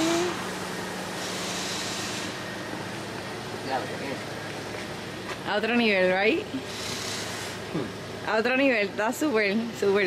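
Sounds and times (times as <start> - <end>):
low mechanical hum: 0.0 - 10.0
outdoor background noise: 0.0 - 10.0.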